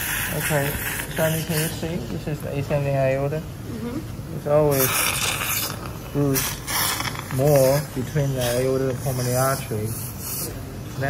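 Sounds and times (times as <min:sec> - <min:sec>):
surgical suction hissing: 0:00.0 - 0:02.4, 0:04.6 - 0:10.7.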